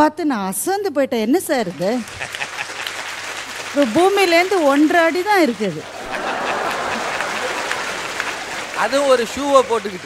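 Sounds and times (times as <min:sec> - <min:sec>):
woman speaking: 0:00.0 - 0:02.1, 0:03.7 - 0:05.9
audience applauding: 0:01.6 - 0:10.0.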